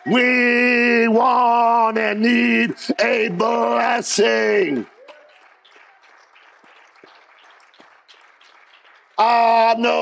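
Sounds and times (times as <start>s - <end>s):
handclaps: 3.0s - 10.0s.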